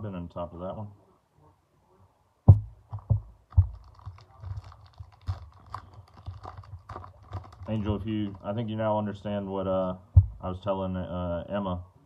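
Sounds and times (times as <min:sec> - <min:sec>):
wrapper crinkling and tearing: 0:03.4 - 0:08.7.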